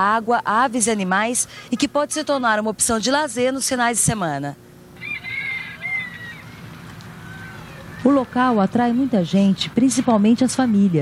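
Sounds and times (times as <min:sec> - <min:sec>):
open-air ambience: 0:00.0 - 0:11.0
birds calling: 0:04.8 - 0:11.0.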